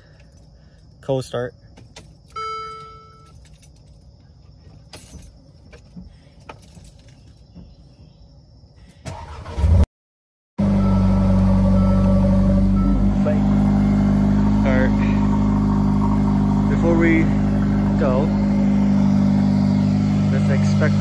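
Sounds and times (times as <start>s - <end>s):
engine cranking: 9.1s - 9.8s
car engine idling: 10.6s - 21.0s.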